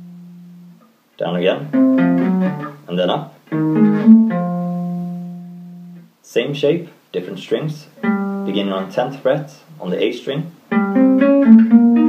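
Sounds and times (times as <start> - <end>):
acoustic guitar picked notes: 0.0 - 6.1, 8.0 - 9.4, 10.7 - 12.0.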